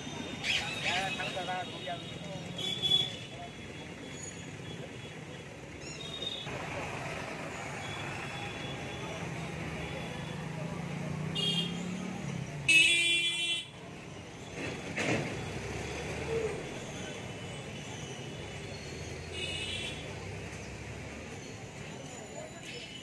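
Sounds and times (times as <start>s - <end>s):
street traffic noise: 0.0s - 23.0s
vehicle horn honking: 11.3s - 11.8s.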